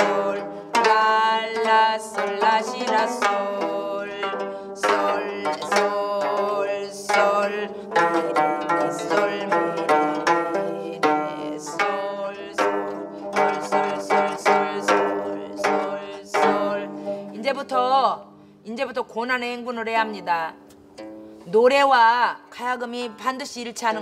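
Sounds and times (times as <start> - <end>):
plucked zither notes: 0.0 - 18.5, 19.8 - 21.5.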